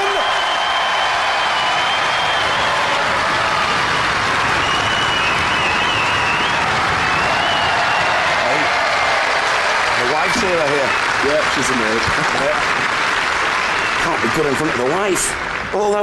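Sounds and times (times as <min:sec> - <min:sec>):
whistling: 0:00.0 - 0:03.0, 0:04.4 - 0:08.2, 0:13.6 - 0:14.5
audience applauding and cheering: 0:00.0 - 0:16.0.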